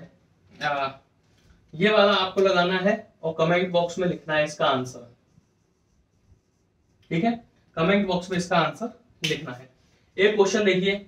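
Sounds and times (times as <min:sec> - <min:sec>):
marker pen scratching on whiteboard: 0:05.2 - 0:07.1.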